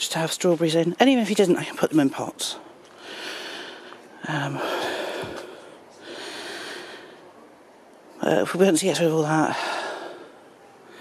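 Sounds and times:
person breathing: 2.9s - 7.4s, 9.5s - 11.0s.

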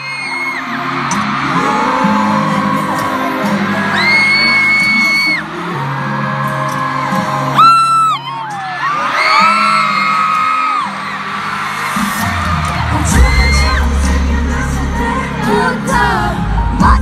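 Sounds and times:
fans screaming: 0.0s - 14.7s
pop song over sound system: 0.0s - 17.0s.

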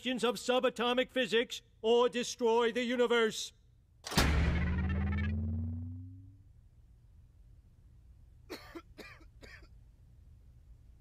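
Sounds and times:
faint low hum: 4.2s - 8.6s
quiet coughs: 8.5s - 9.8s.

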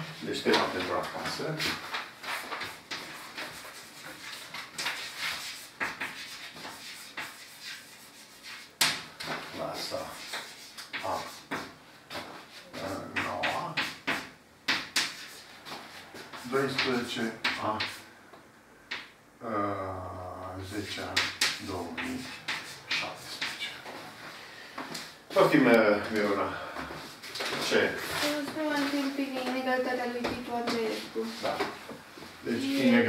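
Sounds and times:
chalk tapping and scratching: 0.1s - 18.0s, 20.8s - 24.0s, 28.1s - 32.0s.

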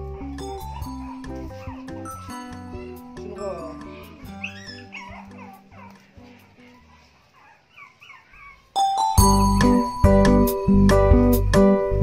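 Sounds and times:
background music: 0.0s - 6.7s, 8.8s - 12.0s
dogs whining: 0.0s - 10.0s.

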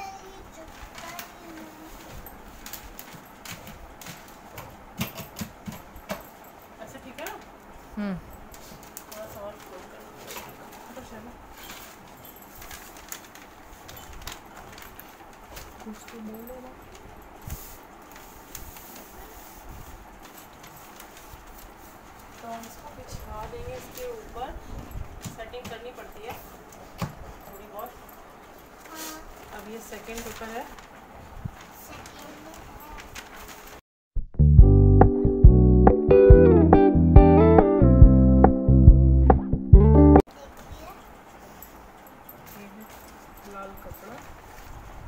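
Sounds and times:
paper sheets rustling: 0.6s - 4.9s, 8.6s - 24.5s, 28.7s - 33.8s.

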